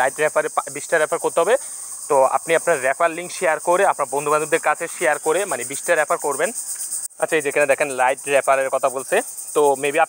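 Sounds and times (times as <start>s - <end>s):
man talking: 0.0s - 6.6s, 7.2s - 10.0s.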